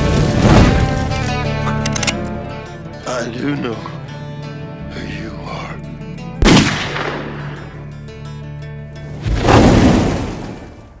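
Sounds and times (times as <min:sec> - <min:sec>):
held trailer music: 0:00.0 - 0:11.0
rifle shot: 0:06.4 - 0:07.6.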